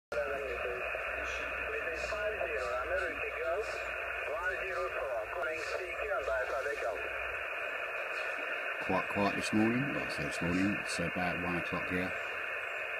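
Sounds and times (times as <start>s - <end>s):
weak warbling radio voice: 0.1s - 7.4s, 8.0s - 12.4s
static hiss: 0.1s - 12.9s.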